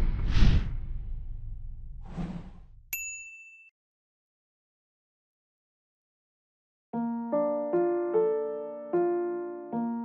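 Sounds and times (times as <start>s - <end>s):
low rumble: 0.0s - 2.9s
bright ding: 2.9s - 3.7s.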